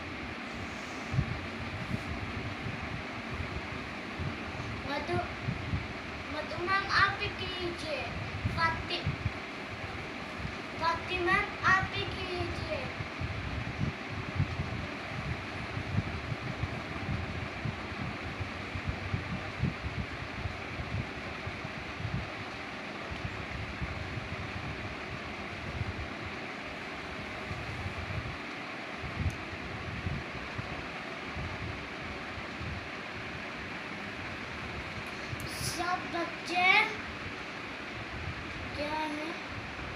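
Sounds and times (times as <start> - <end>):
low rumbling wind buffeting: 0.0 - 39.9
steady hiss: 0.0 - 39.9.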